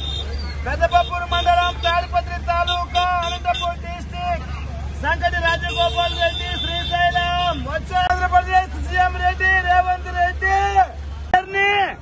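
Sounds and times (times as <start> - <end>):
street traffic rumble: 0.0 - 12.0
man talking: 0.6 - 12.0.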